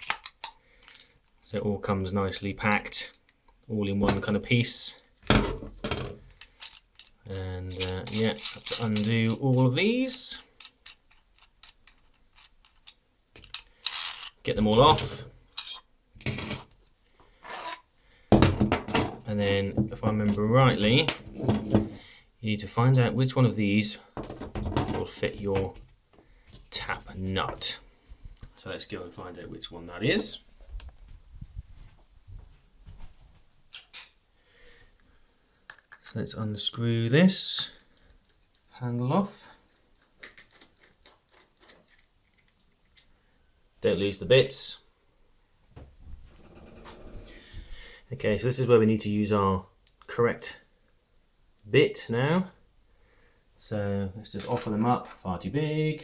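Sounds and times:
metal parts clattering: 0:06.4 - 0:09.4, 0:10.6 - 0:16.6
steel parts rubbing: 0:10.6 - 0:16.0, 0:17.4 - 0:17.9.

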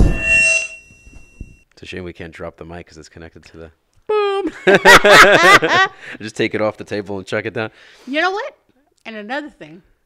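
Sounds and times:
thin metallic ringing: 0:00.0 - 0:01.6.

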